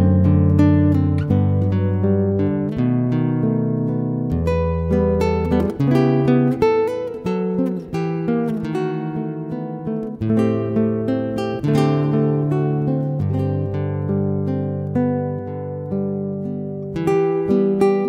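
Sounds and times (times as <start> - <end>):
solo classical guitar: 0.0 - 18.0.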